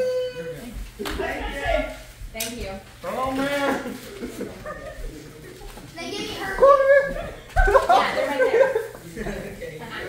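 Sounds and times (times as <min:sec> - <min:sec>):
people calling out: 0:00.0 - 0:02.0, 0:06.1 - 0:08.1.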